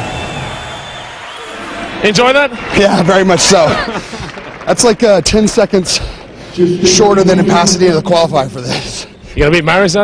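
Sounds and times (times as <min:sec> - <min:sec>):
arena crowd cheering and talking: 0:00.0 - 0:09.9.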